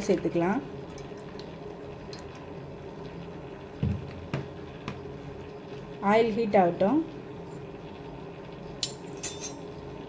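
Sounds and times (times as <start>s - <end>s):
dull thump: 3.8s - 4.5s.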